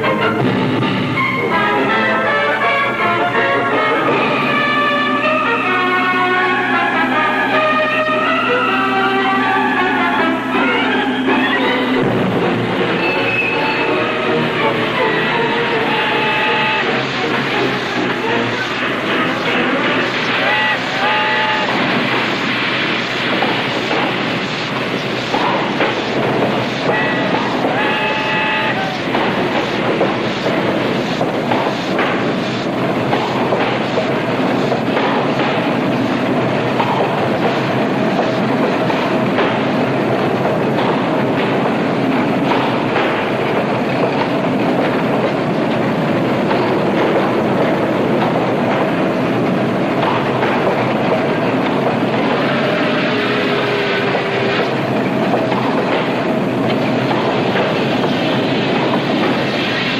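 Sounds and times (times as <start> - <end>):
train wheels clattering on rails: 0.0 - 8.4, 9.8 - 59.9.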